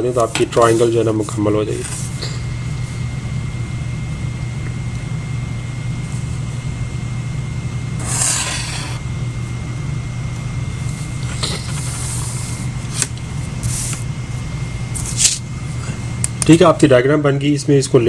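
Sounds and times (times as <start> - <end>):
steady low hum: 0.0 - 18.0
ruler scraping paper: 0.1 - 2.0, 8.0 - 9.0
marker drawn along ruler: 8.0 - 9.0.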